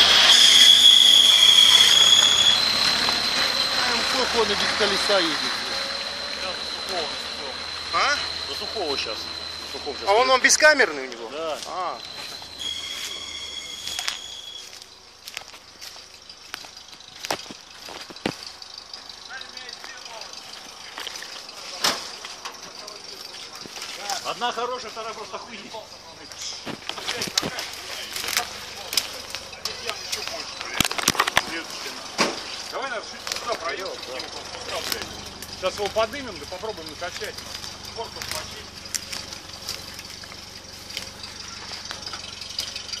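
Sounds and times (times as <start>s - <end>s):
thin high tone: 0.0s - 43.0s
vehicle engine idling: 0.0s - 43.0s
footsteps on leaf litter: 11.2s - 19.1s, 34.3s - 42.1s
dry branches crackling and snapping: 11.6s - 24.3s, 26.2s - 43.0s
dry twigs snapping: 26.7s - 31.5s, 37.1s - 42.8s.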